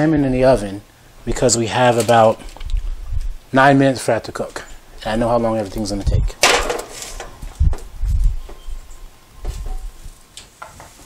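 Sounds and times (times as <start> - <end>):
light footsteps: 2.0 - 3.4, 5.6 - 11.0.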